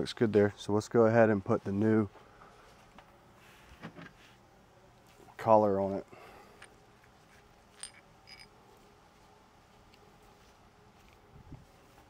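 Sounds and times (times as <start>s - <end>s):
small parts clicking: 7.7s - 8.5s.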